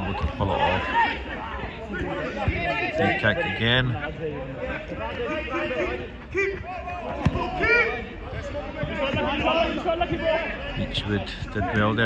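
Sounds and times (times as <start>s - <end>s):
men calling out and chattering: 0.0s - 12.0s.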